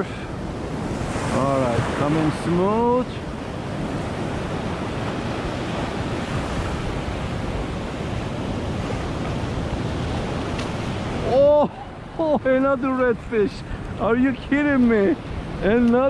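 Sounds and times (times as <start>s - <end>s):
ocean surf washing over shallows: 0.0s - 16.0s.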